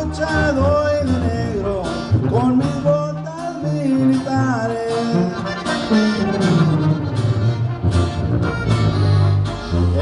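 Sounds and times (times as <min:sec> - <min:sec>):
accordion melody: 0:00.0 - 0:10.0
guitar: 0:00.0 - 0:10.0
tuba bass notes: 0:00.0 - 0:10.0
saxophone: 0:05.1 - 0:10.0.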